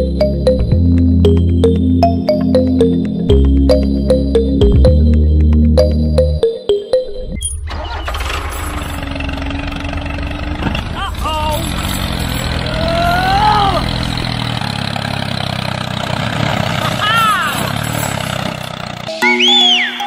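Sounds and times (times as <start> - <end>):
tractor engine droning: 7.4 - 20.0.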